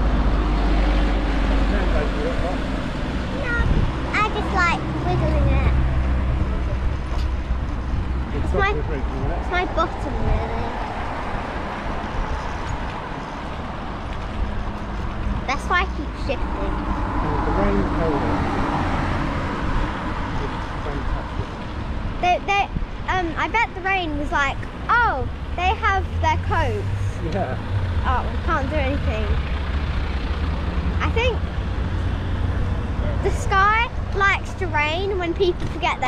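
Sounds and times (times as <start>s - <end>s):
wind rumble on microphone: 0.0s - 23.8s
cars and vans passing: 0.0s - 36.0s
people talking: 1.7s - 2.6s, 3.4s - 5.8s, 8.3s - 10.7s, 15.5s - 18.4s, 20.4s - 21.5s, 22.2s - 29.4s, 31.0s - 31.4s, 33.0s - 36.0s.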